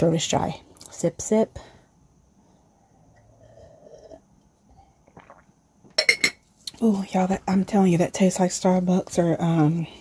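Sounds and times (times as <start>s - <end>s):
sipping and swallowing a drink: 3.3s - 6.8s
cup clattering set down: 5.9s - 6.4s.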